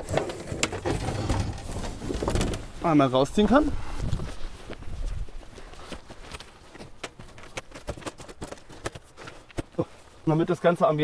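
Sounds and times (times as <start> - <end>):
folding chairs and table clicking: 0.0 - 2.8.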